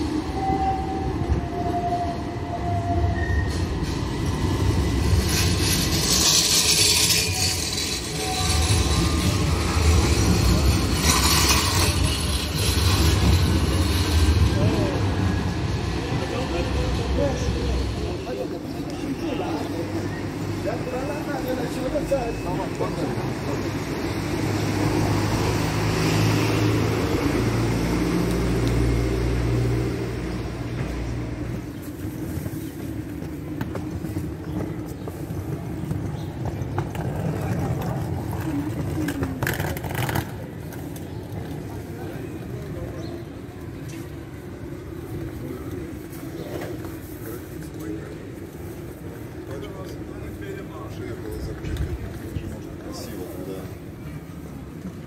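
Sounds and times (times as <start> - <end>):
street noise: 0.0 - 55.0
vehicle engine rumble: 3.4 - 55.0.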